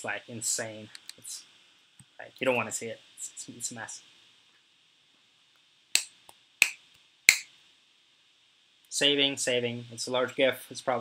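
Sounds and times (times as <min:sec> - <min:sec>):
finger snaps: 0:06.0 - 0:07.5.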